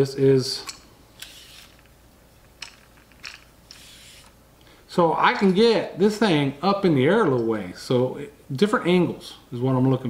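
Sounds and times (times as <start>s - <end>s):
extension pole sections sliding: 0.6s - 4.4s.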